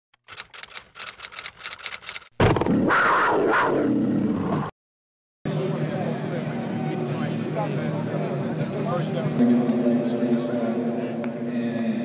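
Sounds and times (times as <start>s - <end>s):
ticking clicks: 0.2s - 2.3s.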